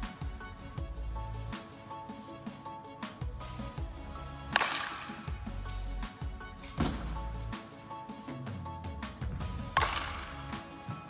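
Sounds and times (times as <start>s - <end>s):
background music with steady beat: 0.0s - 11.0s
bat hitting softball: 4.5s - 5.5s, 6.7s - 7.3s, 9.6s - 10.6s.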